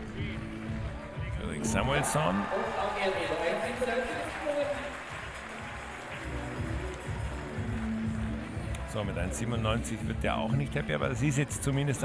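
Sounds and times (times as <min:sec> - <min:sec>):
music with low pulsing beat: 0:00.0 - 0:02.0, 0:05.0 - 0:12.0
stadium crowd noise: 0:00.0 - 0:12.0.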